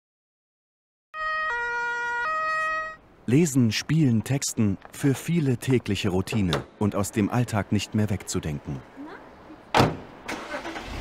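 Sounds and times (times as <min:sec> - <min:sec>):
two-tone emergency siren: 0:01.2 - 0:03.0.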